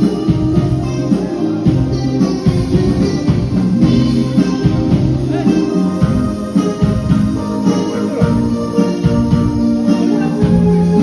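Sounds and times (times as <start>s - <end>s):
live band playing: 0.0s - 11.0s.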